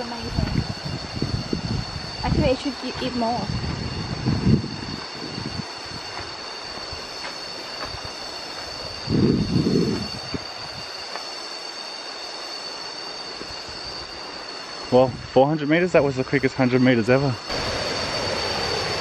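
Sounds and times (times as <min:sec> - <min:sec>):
cicadas droning: 0:00.0 - 0:19.0.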